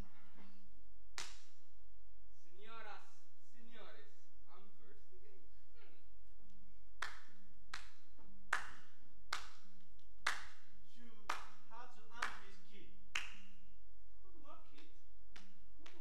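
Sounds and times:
person clapping hands: 1.2 - 1.6, 7.0 - 13.6, 14.7 - 16.0.

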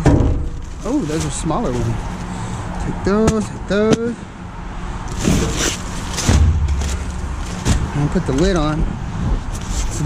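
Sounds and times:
cardboard boxes rustling and knocking: 5.1 - 7.9.

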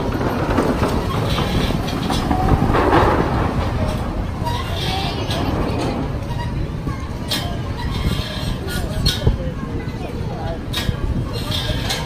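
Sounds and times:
amusement area rumbling noise: 0.0 - 12.0
faint voices: 0.0 - 12.0.

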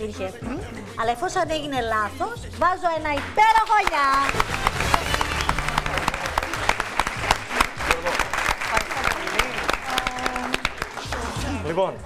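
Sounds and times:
audience applauding: 3.2 - 11.4.

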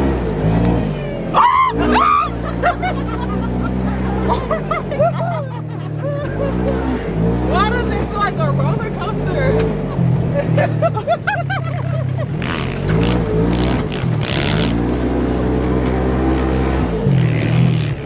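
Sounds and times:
off-road vehicle engine: 0.0 - 18.0.

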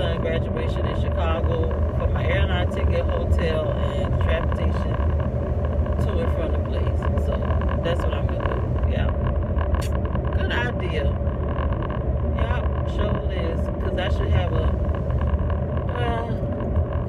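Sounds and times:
woman talking: 0.0 - 5.1, 6.0 - 9.2, 10.4 - 11.2, 12.4 - 14.8, 15.9 - 16.4
car engine and tyres rumbling: 0.0 - 17.0.

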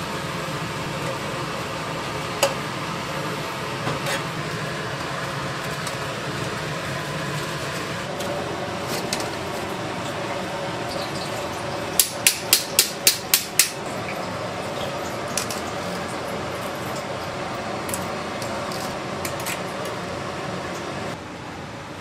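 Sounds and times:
steady background hum: 0.0 - 22.0.

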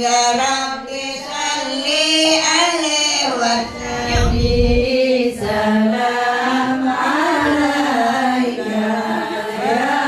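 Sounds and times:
women chanting in unison: 5.2 - 10.0.

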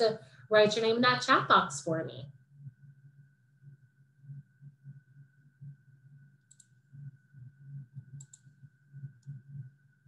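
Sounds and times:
low hum: 0.0 - 10.0
faint high whine: 2.6 - 10.0
computer clicks: 6.5 - 6.8, 8.2 - 8.5.

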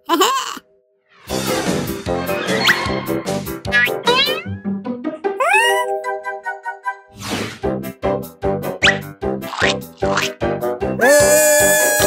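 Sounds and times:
cartoon cat meowing: 5.4 - 6.0.

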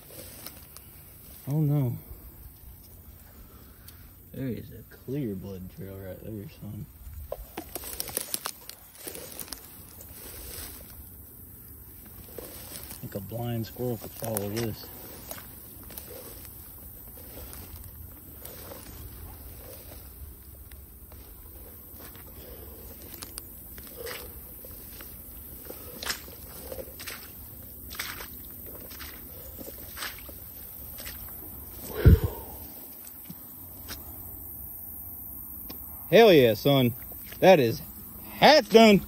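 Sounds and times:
footsteps through tall grass: 0.0 - 3.4, 6.8 - 34.3
stems rustling against legs: 0.0 - 39.0.

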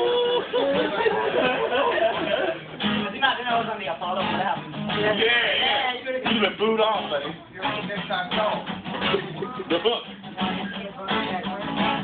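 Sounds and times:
acoustic guitar strummed: 0.0 - 12.0
people's voices: 0.0 - 12.0.

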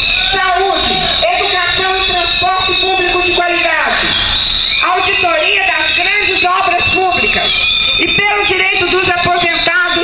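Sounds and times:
rough noisy burst: 0.0 - 9.6
distorted voice through loudspeaker: 0.3 - 4.2, 4.8 - 10.0.

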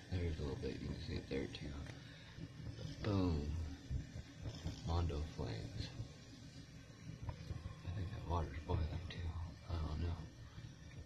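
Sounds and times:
alcohol stove burning: 0.0 - 11.0.

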